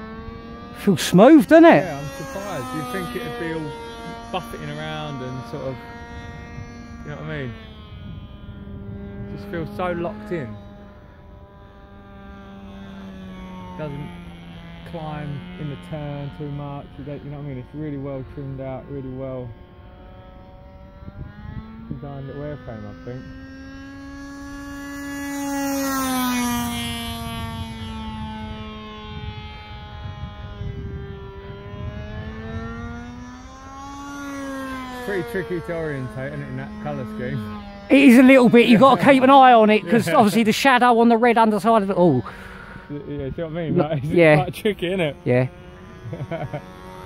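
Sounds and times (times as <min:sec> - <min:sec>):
model plane engine running: 0:00.0 - 0:47.0.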